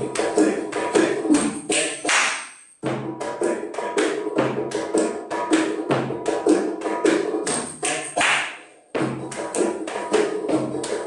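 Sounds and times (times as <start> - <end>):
hand-struck percussion rhythm: 0.0 - 11.0.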